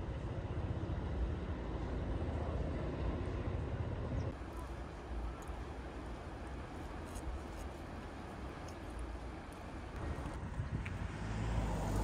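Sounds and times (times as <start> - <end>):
car driving by: 11.0 - 12.0.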